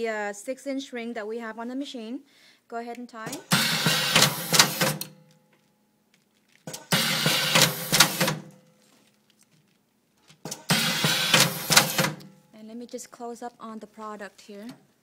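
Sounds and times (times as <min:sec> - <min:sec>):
cable-tie machine whirring and clicking: 0:03.3 - 0:05.2, 0:06.7 - 0:08.6, 0:10.4 - 0:12.3.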